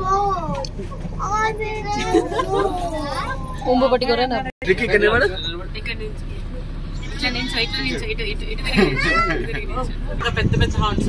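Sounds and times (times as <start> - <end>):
young children chattering: 0.0 - 4.5, 6.2 - 10.2
low background rumble: 0.0 - 11.0.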